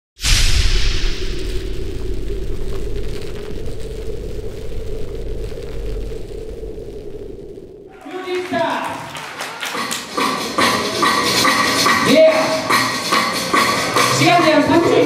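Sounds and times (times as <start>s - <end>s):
booming hit with hiss: 0.2s - 7.9s
low rumbling drone: 0.3s - 8.0s.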